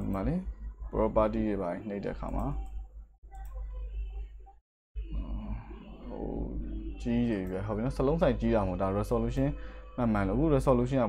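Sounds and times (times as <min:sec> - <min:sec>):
computer mouse clicking: 0:02.2 - 0:03.6
steady low hum: 0:05.0 - 0:11.0.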